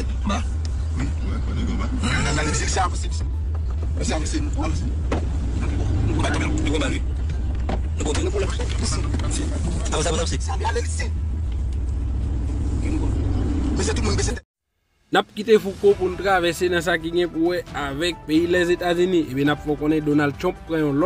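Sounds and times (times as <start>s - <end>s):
people talking: 0.0s - 3.3s, 5.6s - 7.1s, 8.0s - 11.1s, 13.8s - 14.4s, 15.2s - 21.0s
car cabin road rumble: 0.0s - 14.4s.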